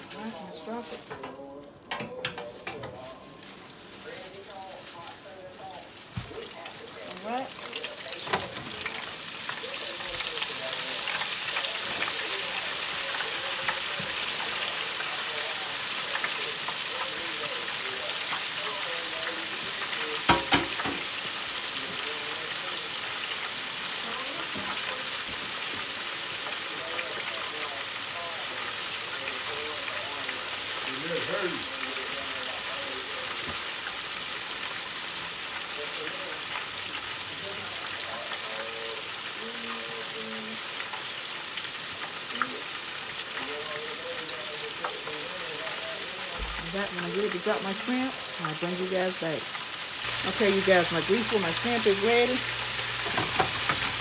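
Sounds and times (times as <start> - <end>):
chicken deep-frying in oil: 0.0 - 54.0.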